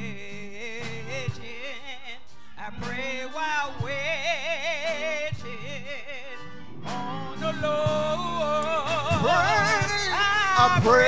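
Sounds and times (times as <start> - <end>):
instrumental accompaniment: 0.0 - 11.0
woman singing gospel song: 0.0 - 11.0.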